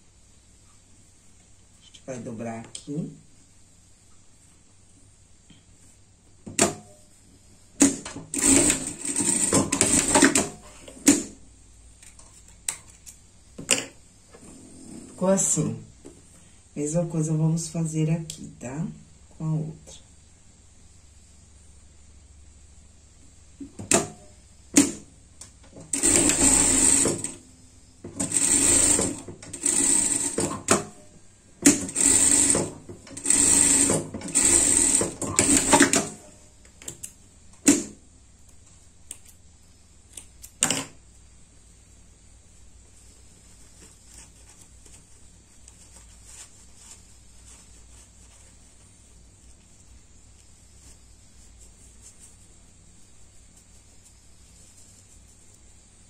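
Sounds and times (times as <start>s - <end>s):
sewing machine running in bursts: 8.3s - 10.5s, 25.9s - 27.4s, 28.2s - 30.6s, 31.7s - 36.1s.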